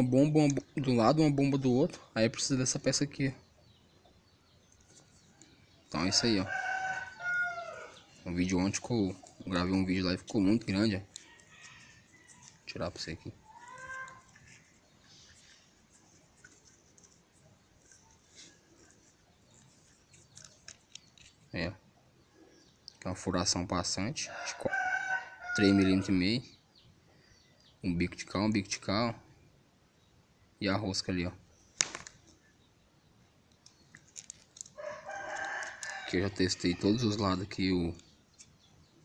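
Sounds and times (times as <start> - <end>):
rooster crowing: 6.0 - 8.0, 24.3 - 26.1, 34.8 - 36.2.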